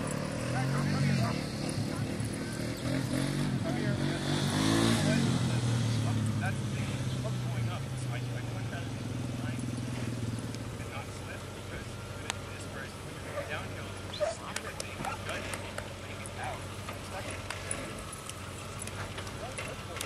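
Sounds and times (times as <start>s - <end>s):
truck engine revving and droning: 0.0s - 20.0s.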